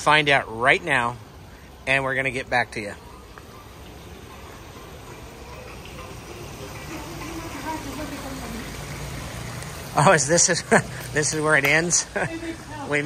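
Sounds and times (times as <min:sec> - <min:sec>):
fountain water splashing: 0:00.0 - 0:13.0.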